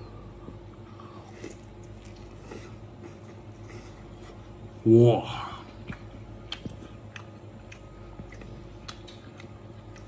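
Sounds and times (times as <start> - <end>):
chewing crispy food: 0.6 - 4.6, 5.6 - 10.0.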